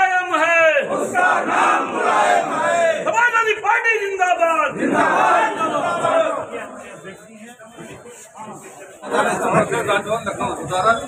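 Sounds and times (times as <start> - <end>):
crowd of men shouting: 0.0 - 7.0.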